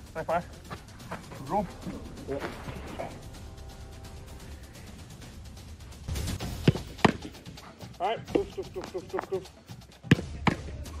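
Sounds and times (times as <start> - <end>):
quick footsteps on artificial turf: 0.3 - 2.8.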